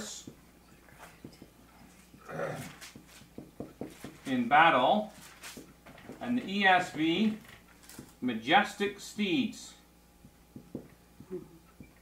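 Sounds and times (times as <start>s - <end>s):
marker squeaking on whiteboard: 0.6s - 4.2s.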